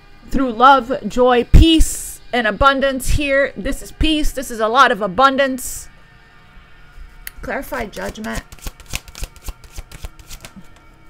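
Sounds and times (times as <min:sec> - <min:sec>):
cards being shuffled: 0:07.7 - 0:10.9.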